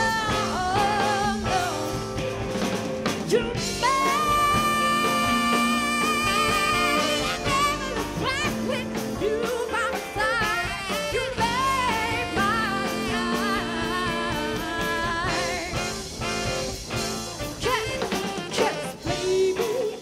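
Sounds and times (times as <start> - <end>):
live band playing jazzy pop: 0.0 - 20.0.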